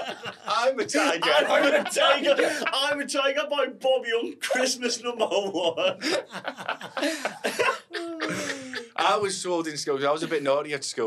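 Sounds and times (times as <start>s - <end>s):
men laughing hard: 0.0s - 3.0s, 5.1s - 9.2s.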